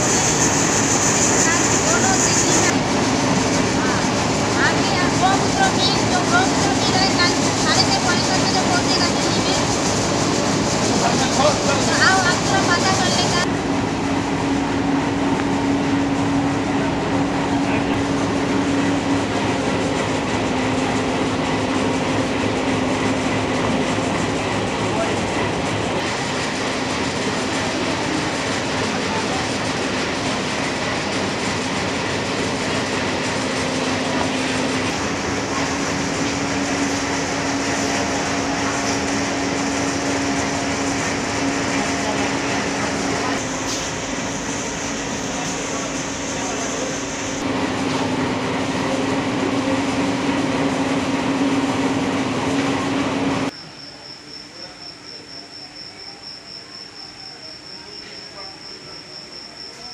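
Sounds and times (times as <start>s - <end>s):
train humming: 0.0s - 53.6s.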